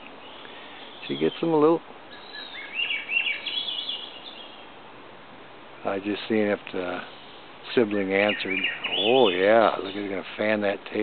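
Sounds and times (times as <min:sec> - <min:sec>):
hawk calling: 0:02.1 - 0:04.7, 0:06.9 - 0:10.2.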